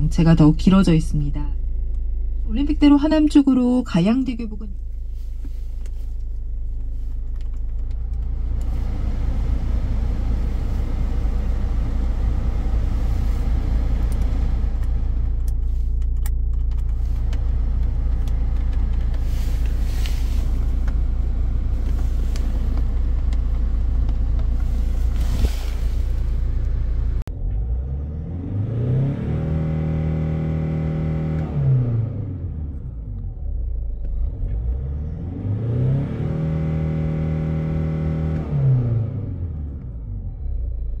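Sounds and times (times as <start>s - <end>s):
car engine revving: 5.0s - 41.0s
climate control blower rushing: 8.1s - 15.6s.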